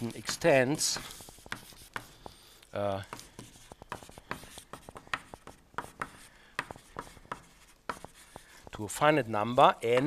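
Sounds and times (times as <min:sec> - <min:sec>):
chalk writing on a blackboard: 0:00.0 - 0:08.8.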